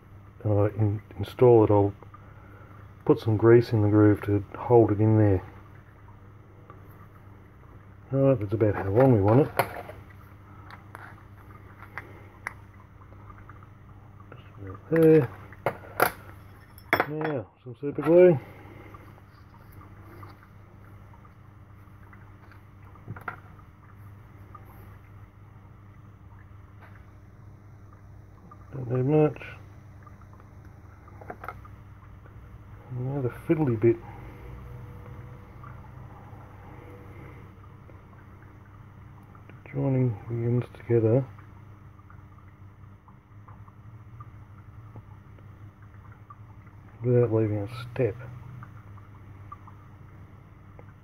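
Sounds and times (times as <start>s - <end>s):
low background hum: 0.0s - 51.0s.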